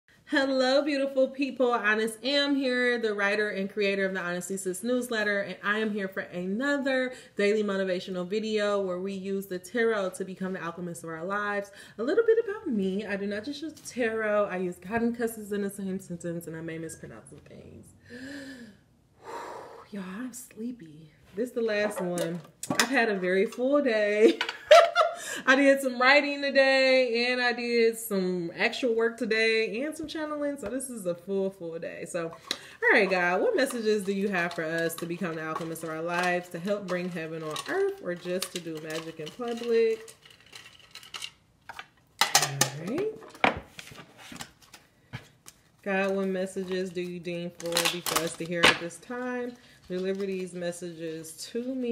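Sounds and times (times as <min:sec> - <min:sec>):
breathy exhale: 0:18.1 - 0:19.9
woman sighing: 0:18.1 - 0:19.9.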